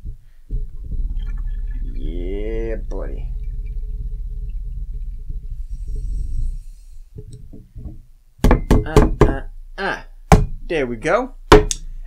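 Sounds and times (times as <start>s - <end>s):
low steady rumble: 0.0s - 8.6s, 9.4s - 12.0s.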